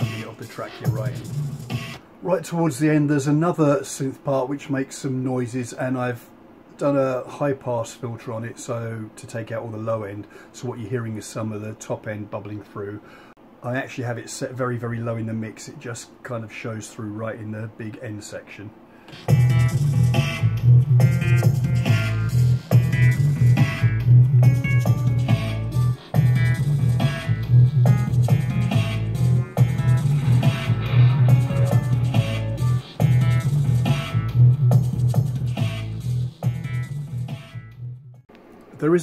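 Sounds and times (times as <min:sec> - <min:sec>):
drum groove: 0:00.0 - 0:02.0, 0:19.1 - 0:37.6
heavy synth bassline: 0:00.0 - 0:02.0, 0:19.1 - 0:38.0
short high synth notes: 0:29.4 - 0:32.9.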